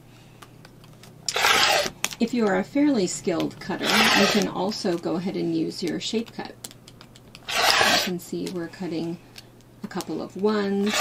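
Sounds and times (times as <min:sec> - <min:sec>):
rotary cutter slicing fabric: 0:01.3 - 0:01.9, 0:03.8 - 0:04.5, 0:07.5 - 0:08.1, 0:10.7 - 0:11.0.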